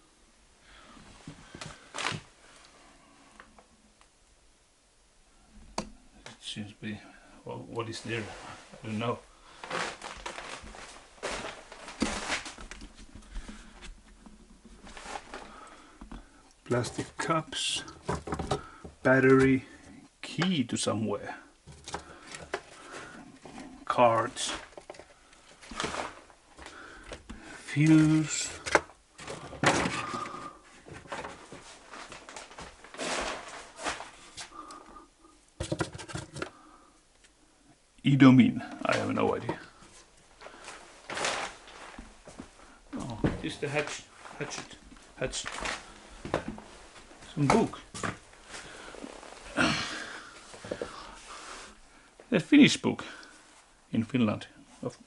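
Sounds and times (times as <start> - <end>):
rustling: 7.8 - 19.9, 21.6 - 37.5, 38.2 - 52.3
footsteps crunching over debris: 9.5 - 13.9, 29.1 - 34.6, 38.9 - 51.4
objects knocking and rattling: 17.9 - 19.0, 21.6 - 23.6, 24.6 - 27.4, 35.6 - 36.6.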